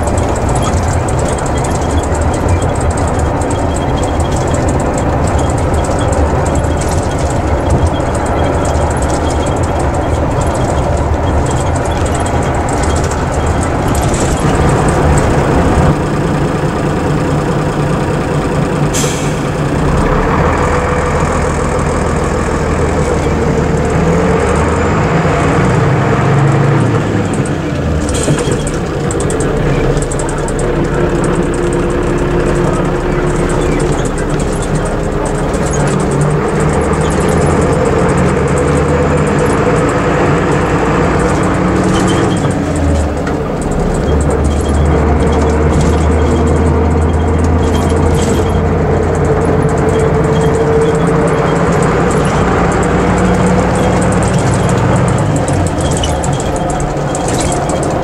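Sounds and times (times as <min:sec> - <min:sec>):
diesel engine running: 0:00.0 - 0:58.0
tyre and road noise: 0:00.0 - 0:58.0.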